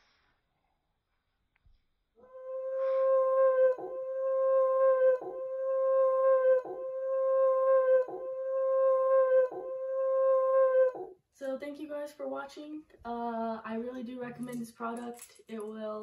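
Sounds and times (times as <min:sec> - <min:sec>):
dog howling: 0:02.2 - 0:11.2.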